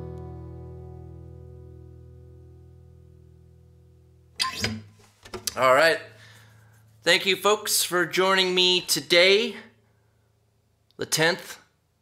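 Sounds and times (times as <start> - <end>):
acoustic guitar chord ringing: 0.0 - 4.1.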